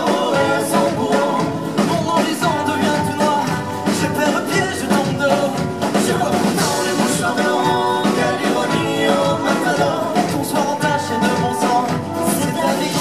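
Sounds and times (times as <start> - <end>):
double bass: 0.0 - 13.0
person singing: 0.0 - 13.0.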